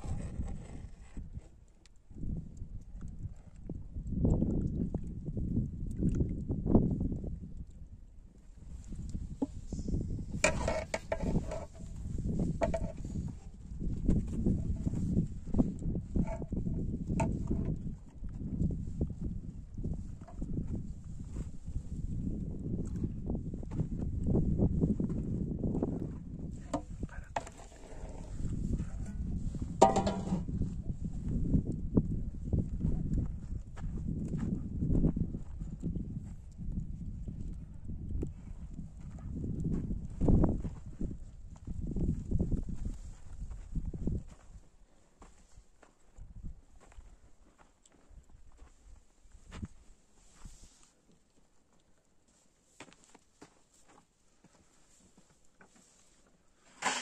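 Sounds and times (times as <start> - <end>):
metal pots knocking and scraping: 10.4 - 13.0, 29.8 - 30.5.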